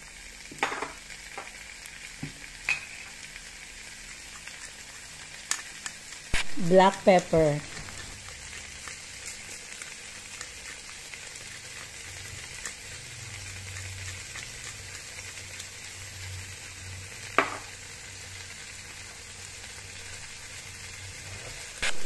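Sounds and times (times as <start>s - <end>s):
food sizzling in a pan: 0.0s - 22.0s.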